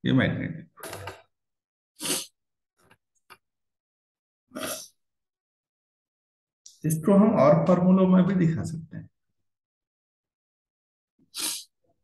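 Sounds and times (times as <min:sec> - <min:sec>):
short sharp breath: 0:11.3 - 0:11.7.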